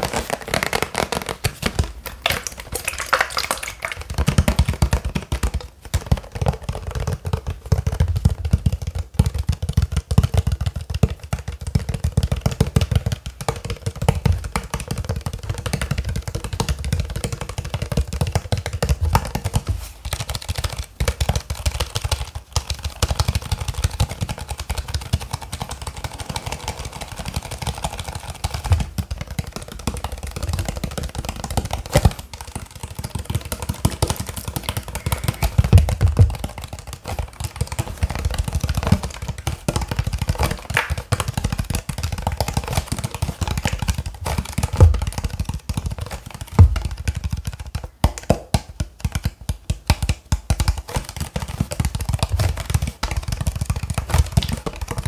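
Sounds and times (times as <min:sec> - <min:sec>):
plastic bottle crackling: 0:00.0 - 0:08.8, 0:13.4 - 0:55.0
handling thumps: 0:24.0 - 0:55.0.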